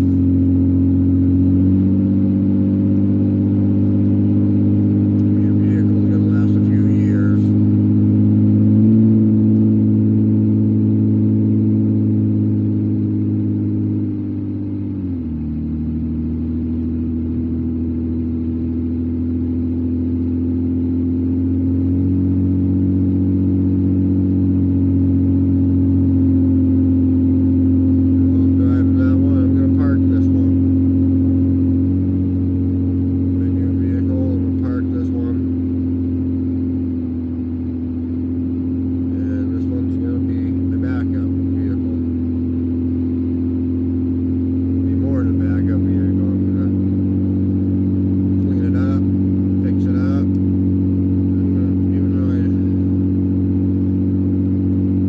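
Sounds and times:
car engine hum: 0.0 - 55.0
road noise: 0.0 - 55.0.

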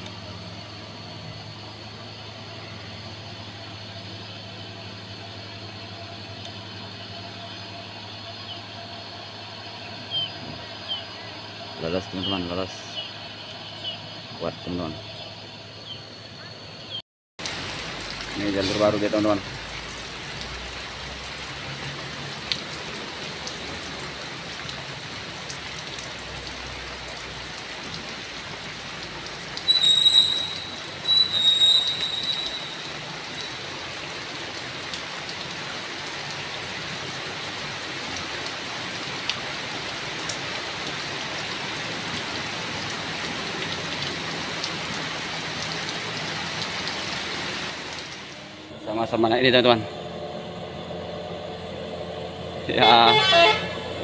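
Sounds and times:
truck engine rumble: 0.0 - 54.0
rain on a wet road: 17.4 - 48.7, 52.0 - 54.0
high-pitched squeals: 29.6 - 33.6.

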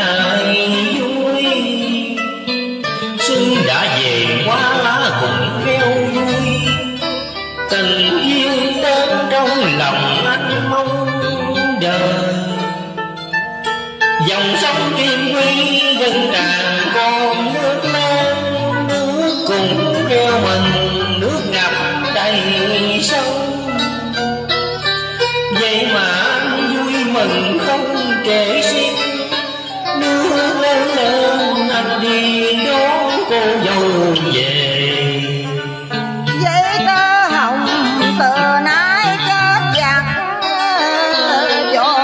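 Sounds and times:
instrumental karaoke backing music: 0.0 - 42.0.

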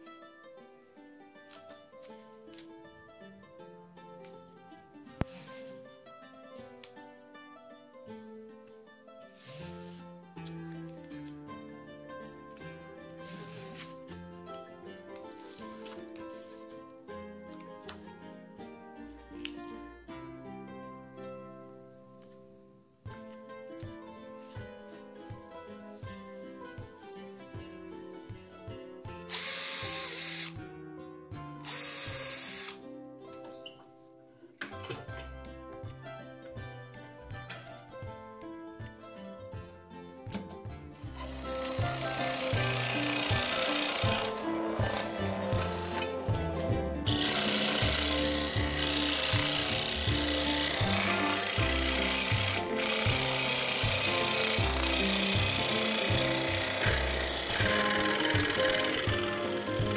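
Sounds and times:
cordless drill boring through plywood: 29.3 - 30.6, 31.6 - 32.8, 41.2 - 46.1, 47.1 - 59.9
background music with bass line: 34.8 - 59.9.

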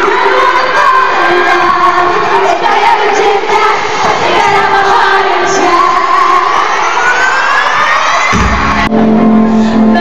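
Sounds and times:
crowd cheering: 0.0 - 9.5
live pop band playing: 8.2 - 10.0.

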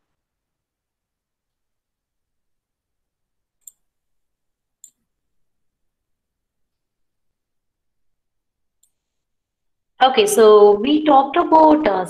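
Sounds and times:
computer mouse clicks: 3.6 - 3.9, 4.8 - 5.1, 8.8 - 9.3.

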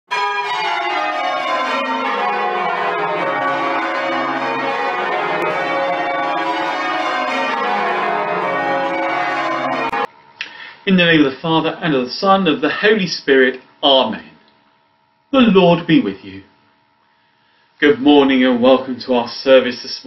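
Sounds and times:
church bells ringing: 0.1 - 10.1.

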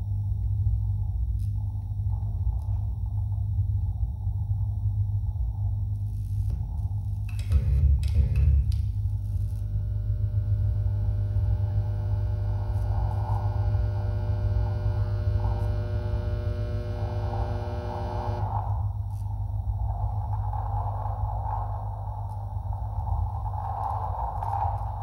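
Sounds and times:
loud low hum: 0.0 - 25.0.

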